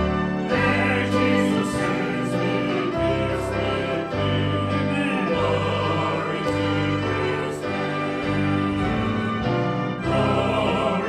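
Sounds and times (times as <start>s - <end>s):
choir singing a hymn: 0.0s - 11.0s
instrumental accompaniment chords: 0.0s - 11.0s.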